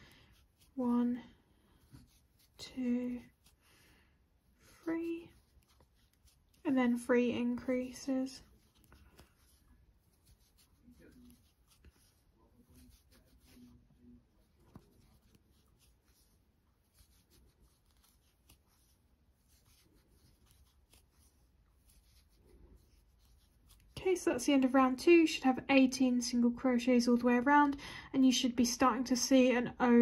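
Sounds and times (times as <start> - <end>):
soft rustling of yarn: 0.0 - 30.0.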